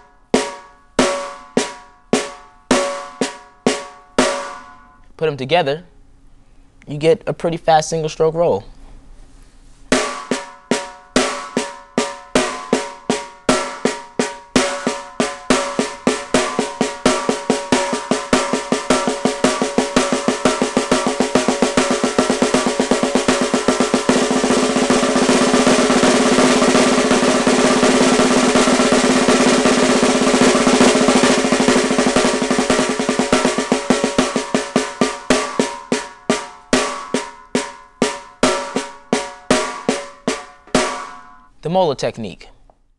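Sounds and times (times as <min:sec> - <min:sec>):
snare drum roll: 0:00.0 - 0:04.9, 0:09.9 - 0:41.5.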